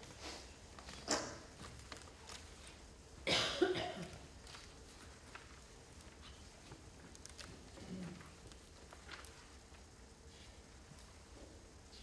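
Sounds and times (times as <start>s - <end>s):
person coughing: 3.2s - 4.2s.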